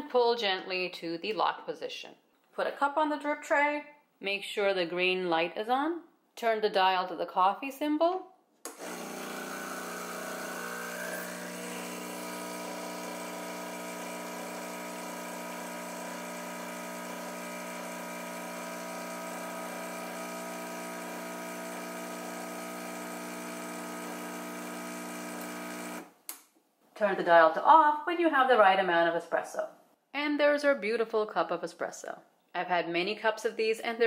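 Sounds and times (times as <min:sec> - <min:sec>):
espresso machine pump buzzing: 0:08.7 - 0:26.1.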